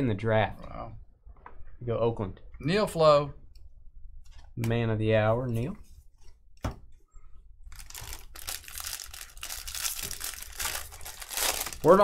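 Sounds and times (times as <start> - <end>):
foil wrapper crinkling and tearing: 7.7 - 12.0.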